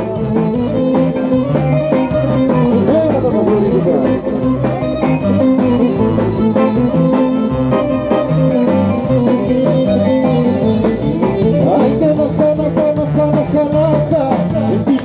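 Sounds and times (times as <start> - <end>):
live band with plucked strings: 0.0 - 15.0.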